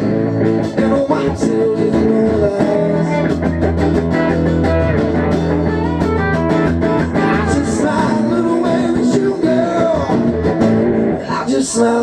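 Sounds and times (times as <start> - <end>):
lead guitar with bending notes: 0.0 - 11.4
strummed acoustic guitar: 0.0 - 11.4.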